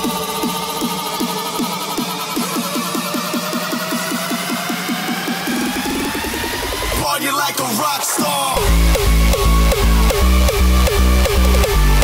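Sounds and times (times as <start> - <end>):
bass: 0.0 - 7.1, 8.6 - 12.0
rising synth sweep: 2.2 - 7.0.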